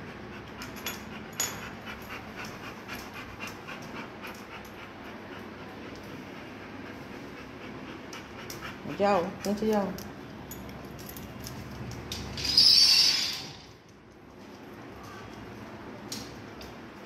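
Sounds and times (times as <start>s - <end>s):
dog panting: 0.0s - 10.2s.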